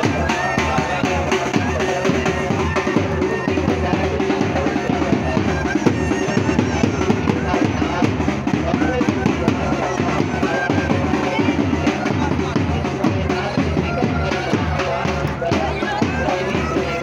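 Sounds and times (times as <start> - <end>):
bagpipes playing: 0.0 - 17.0
fast dense drumming: 0.0 - 17.0.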